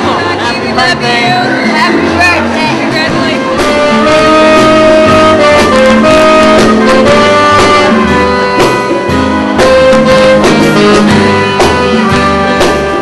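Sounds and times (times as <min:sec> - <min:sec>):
person speaking: 0:00.0 - 0:04.4
bass: 0:00.0 - 0:13.0
saxophone: 0:00.0 - 0:13.0
steady drum beat: 0:00.0 - 0:13.0
trumpet: 0:00.0 - 0:13.0.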